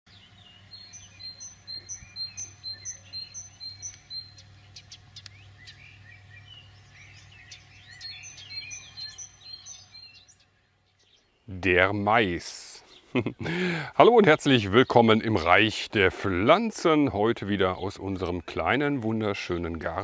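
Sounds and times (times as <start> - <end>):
birds chirping: 0.1 - 20.0
steady low hum: 0.1 - 20.0.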